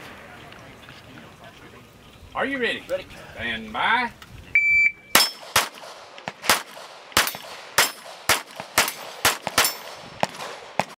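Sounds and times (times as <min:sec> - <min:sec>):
pistol shots: 0:05.1 - 0:10.9.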